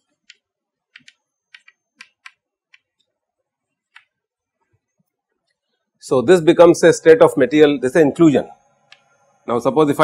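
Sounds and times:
chalk clicking on chalkboard: 0.1s - 3.1s.

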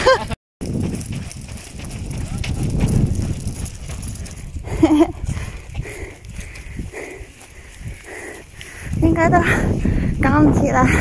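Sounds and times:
wind: 0.0s - 11.0s
running footsteps on pavement: 0.6s - 11.0s.

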